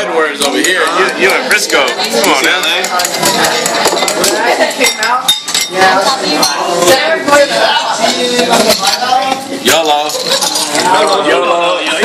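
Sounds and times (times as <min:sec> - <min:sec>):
utensils clinking on ceramic bowls: 0:00.3 - 0:07.0, 0:08.0 - 0:11.3.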